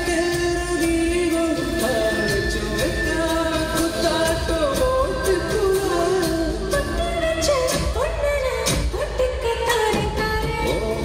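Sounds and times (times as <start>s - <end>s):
man singing: 0.0s - 6.8s
drums keeping a steady beat: 0.0s - 11.0s
live band playing: 0.0s - 11.0s.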